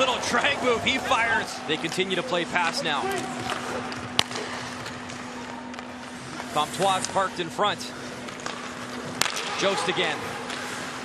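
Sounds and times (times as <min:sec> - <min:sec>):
arena low hum: 0:00.0 - 0:11.0
stick striking puck: 0:08.3 - 0:09.6.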